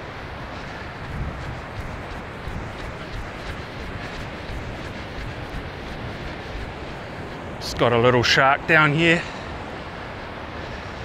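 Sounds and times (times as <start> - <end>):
wind rumble on microphone: 0.0 - 8.5
surf breaking: 0.4 - 8.0.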